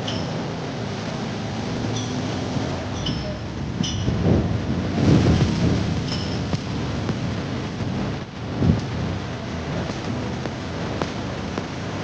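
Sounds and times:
wind buffeting microphone: 2.3s - 12.0s.

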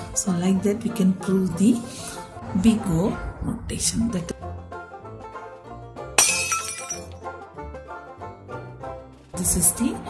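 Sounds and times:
plucked string background music: 0.0s - 10.0s.

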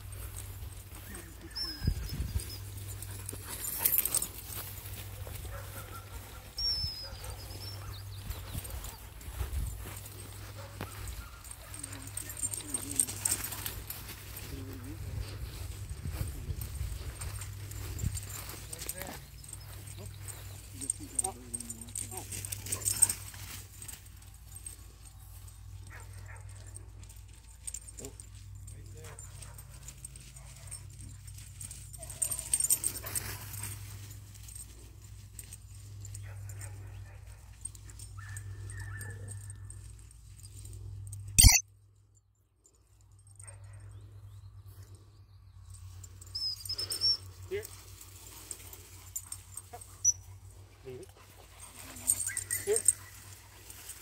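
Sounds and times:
movement through tall grass: 0.0s - 27.6s, 46.0s - 54.0s
short chirps: 41.4s - 41.6s.

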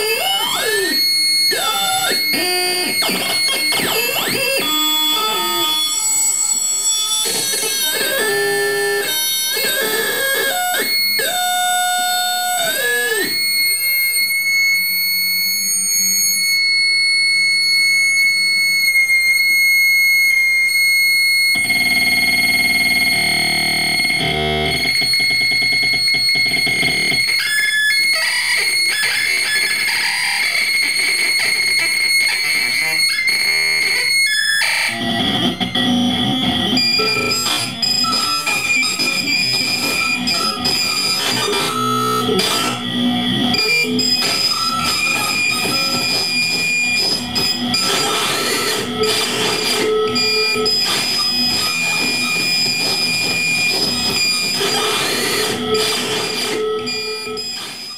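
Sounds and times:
dense electronic noise layer: 34.9s - 57.9s
gliding electronic tones: 34.9s - 57.9s.

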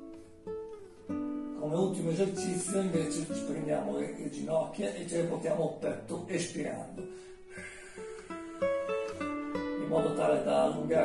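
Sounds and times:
plucked guitar melody: 0.0s - 11.0s.

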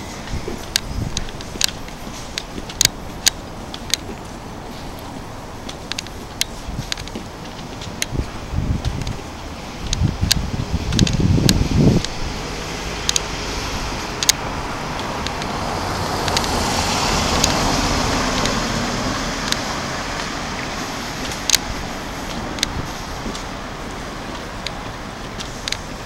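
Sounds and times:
low rumbles: 0.0s - 26.0s
sharp clicks: 0.2s - 4.3s, 5.0s - 8.2s, 9.8s - 12.2s, 13.0s - 13.4s, 14.1s - 15.6s, 16.2s - 16.6s, 17.3s - 17.7s, 19.4s - 20.4s, 21.2s - 21.7s
car passing by: 10.5s - 26.0s.

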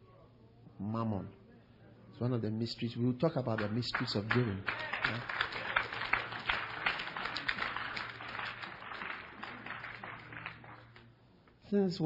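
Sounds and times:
congregation applauding: 3.5s - 11.1s.

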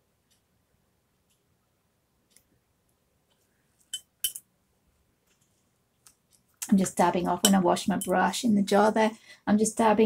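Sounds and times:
paintbrush clinking glass jar: 3.9s - 4.4s.

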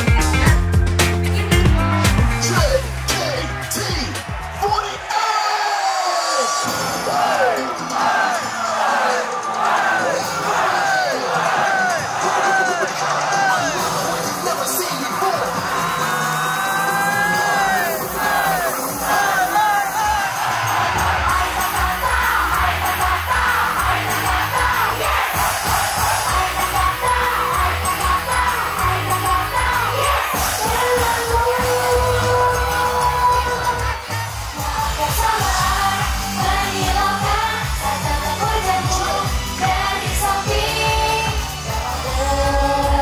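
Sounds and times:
crowd shouting and cheering: 0.0s - 43.0s
pop song with heavy beat: 0.0s - 43.0s
girl group singing: 20.5s - 43.0s.

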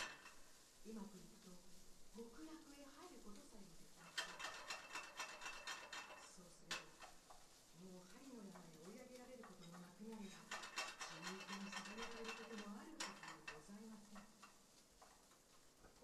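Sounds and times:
woman reading aloud: 0.8s - 4.2s, 6.2s - 6.9s, 7.8s - 10.5s, 11.1s - 14.3s
light clicks and clinks: 8.4s - 16.0s.

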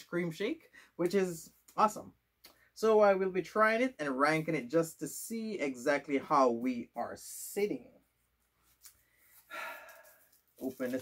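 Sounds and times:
man exhaling breathily: 9.3s - 10.4s.

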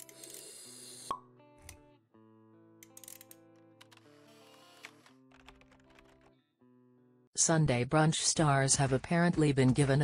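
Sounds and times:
background music with held notes: 0.0s - 7.2s.

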